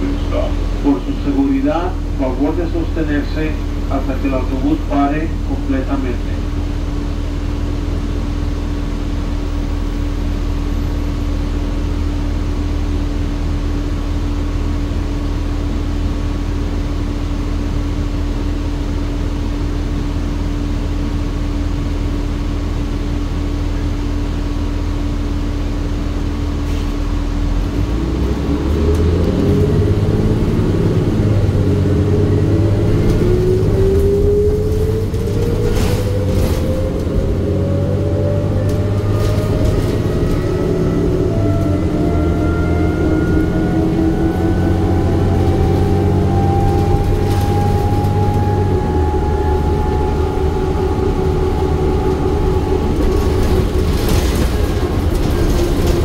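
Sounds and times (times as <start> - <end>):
bus accelerating with rising whine: 0.0 - 56.0
bus engine idling: 0.0 - 56.0.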